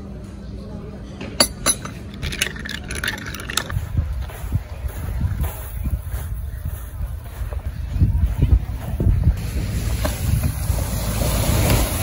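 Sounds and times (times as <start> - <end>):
glass clinking on saucer: 1.4 - 3.8.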